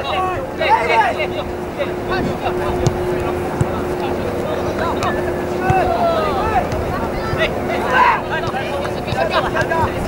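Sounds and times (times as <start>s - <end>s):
distant players shouting: 0.0s - 10.0s
steady hum: 0.0s - 10.0s
wind-like noise: 0.0s - 10.0s.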